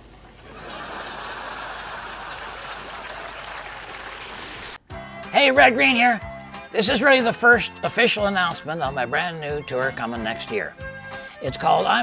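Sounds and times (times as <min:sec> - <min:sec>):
audience applauding: 0:00.6 - 0:04.8.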